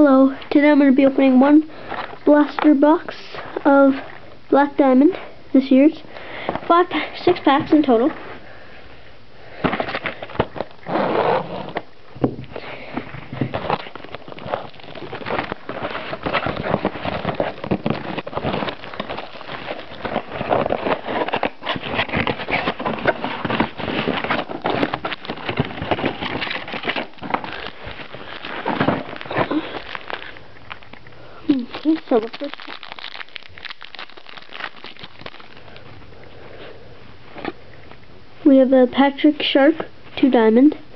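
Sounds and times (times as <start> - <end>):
plastic wrapping crinkling: 9.6 - 11.9, 12.6 - 36.4.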